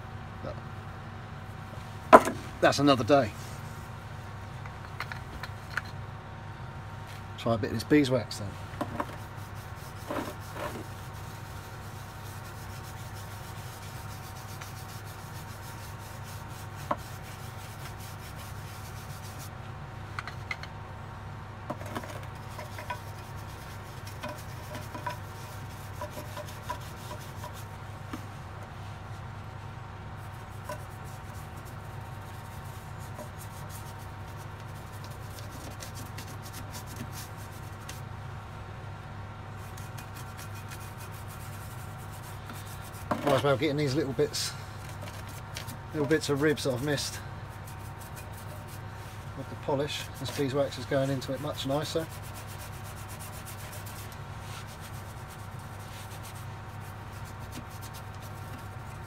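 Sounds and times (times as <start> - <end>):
extractor fan humming: 0.0 - 59.0
hand rubbing stone surface: 8.9 - 19.5, 21.8 - 28.2, 30.2 - 38.0, 39.6 - 59.0.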